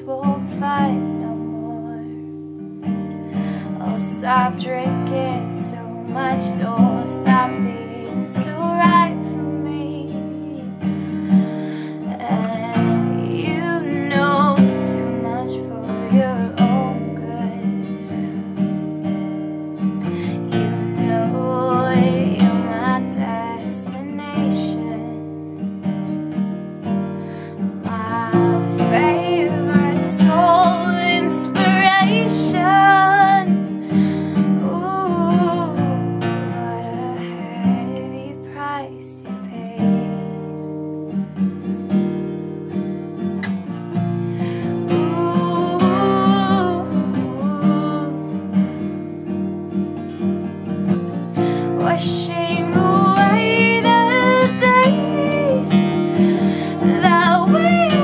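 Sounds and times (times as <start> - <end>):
woman singing: 0.0 - 2.4, 3.3 - 18.5, 19.8 - 25.6, 27.3 - 40.7, 43.4 - 48.9, 50.9 - 58.0
acoustic guitar strumming: 0.0 - 58.0.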